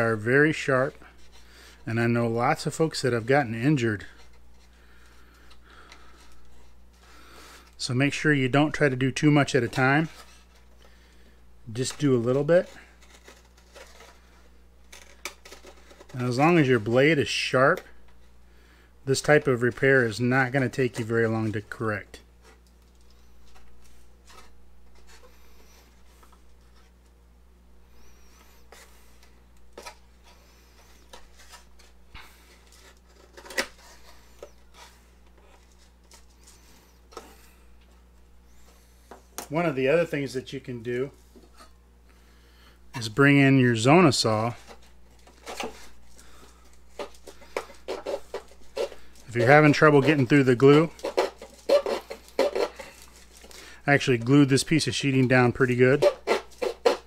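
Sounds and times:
hobby knife scraping balsa wood: 11.8s - 17.0s, 44.3s - 57.0s.

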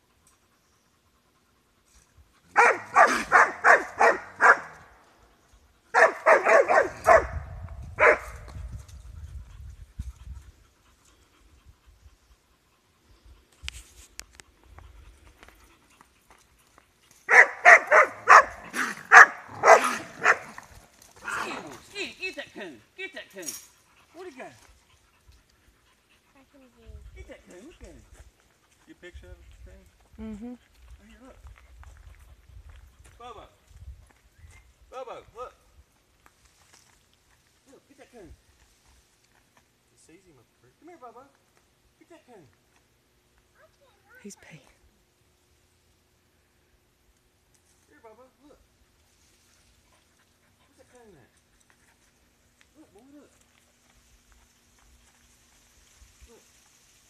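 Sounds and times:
dog barking: 2.5s - 4.8s, 5.9s - 8.4s, 17.3s - 20.6s.

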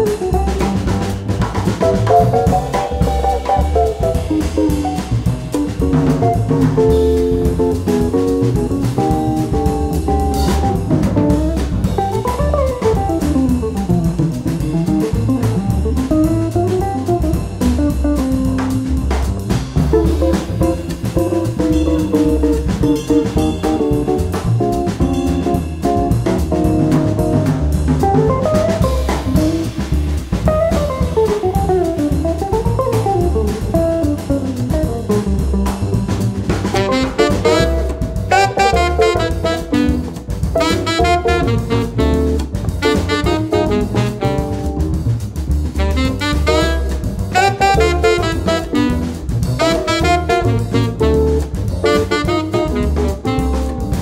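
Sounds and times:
bass line: 0.0s - 54.0s
jazz guitar soloing: 0.0s - 54.0s
swinging drum kit: 0.0s - 54.0s.

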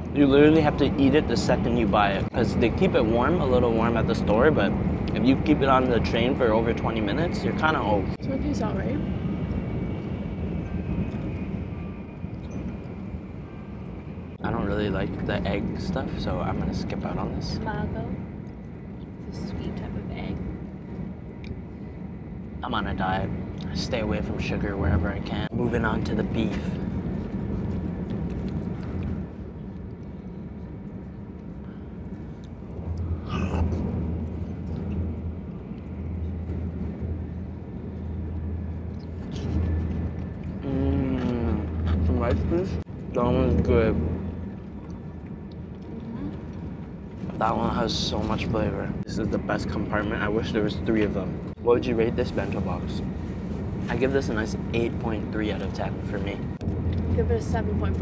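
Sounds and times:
faint high whine: 0.0s - 27.9s
train cabin low rumble: 0.0s - 58.0s.

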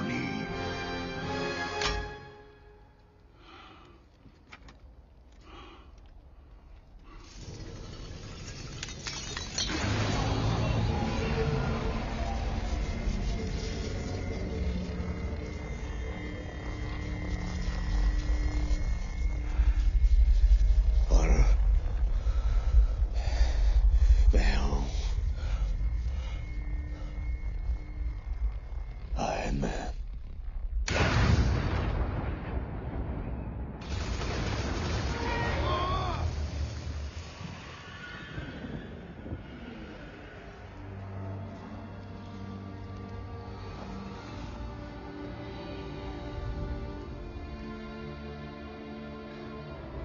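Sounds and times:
low rumbling: 5.5s - 47.9s
man speaking: 29.2s - 30.0s.

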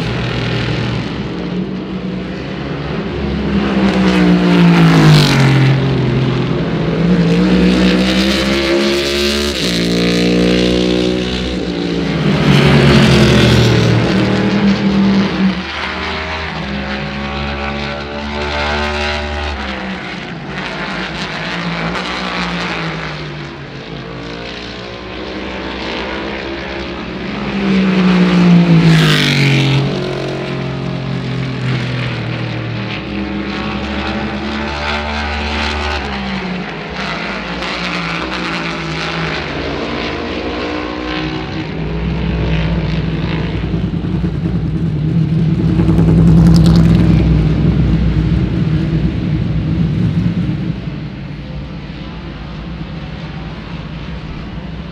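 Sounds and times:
race car engine at speed: 0.0s - 54.9s.

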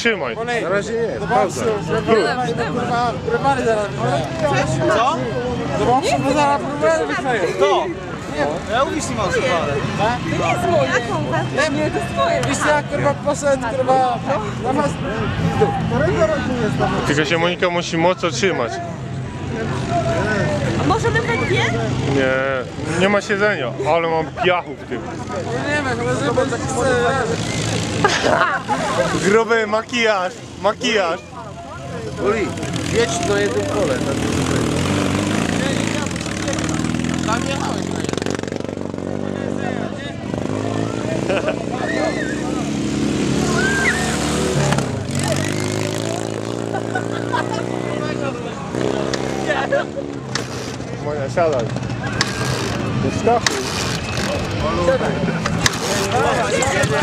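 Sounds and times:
faint voices talking: 0.0s - 57.0s
people laughing: 26.7s - 29.6s, 41.0s - 42.6s, 43.4s - 50.6s, 54.6s - 57.0s.

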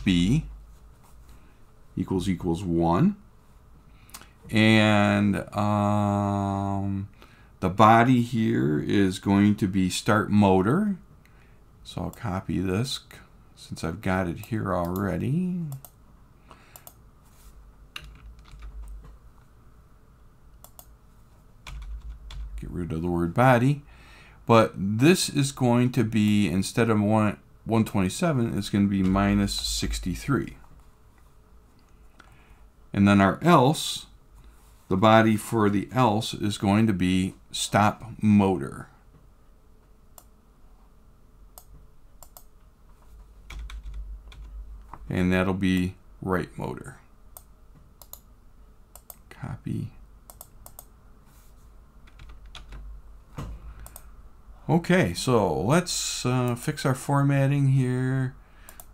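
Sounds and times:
faint low rumble: 17.1s - 39.6s, 40.2s - 50.8s
keyboard and mouse clicks: 17.9s - 19.2s, 20.6s - 20.9s, 41.6s - 42.5s, 50.3s - 50.9s, 53.4s - 54.1s
computer keyboard keystrokes: 18.0s - 19.0s, 21.7s - 22.6s, 43.5s - 44.5s, 52.1s - 52.8s.

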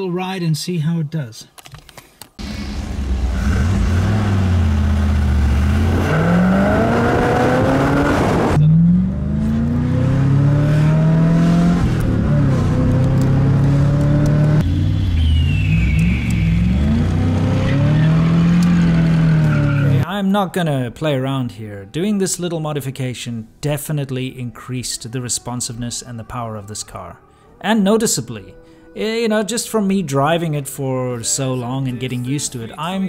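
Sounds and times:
car engine accelerating: 2.4s - 20.0s.

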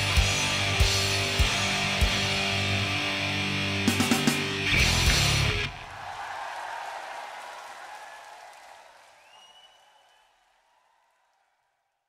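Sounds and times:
applause and crowd noise: 5.7s - 11.8s
rising whistle: 9.2s - 10.4s.

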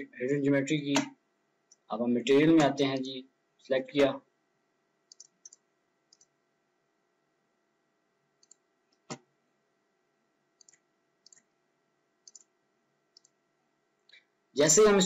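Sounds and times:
computer mouse clicks: 5.1s - 6.4s, 8.4s - 9.3s, 10.6s - 11.6s, 12.2s - 12.5s, 13.1s - 13.4s.

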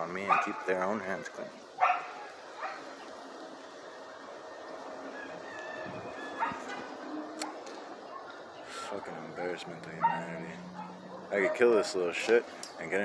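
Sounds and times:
outdoor background noise: 0.0s - 13.0s
dog barking and yipping: 0.3s - 0.6s, 1.8s - 2.8s, 6.2s - 7.6s, 9.9s - 11.9s.

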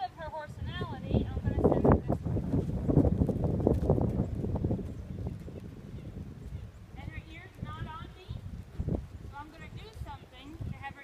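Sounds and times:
horse hoofbeats on sand: 0.8s - 11.0s.

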